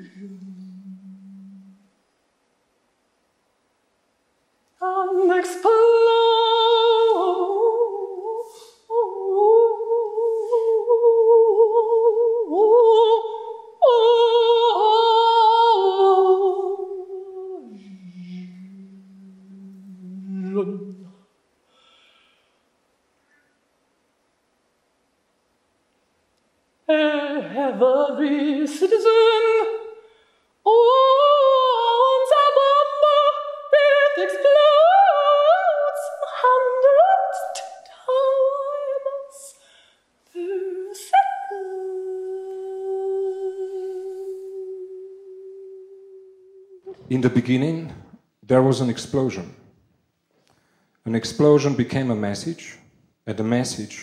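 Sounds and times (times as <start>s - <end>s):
wordless operatic singing: 0.0s - 1.9s, 4.8s - 21.2s, 26.9s - 30.0s, 30.7s - 39.6s, 40.3s - 49.5s.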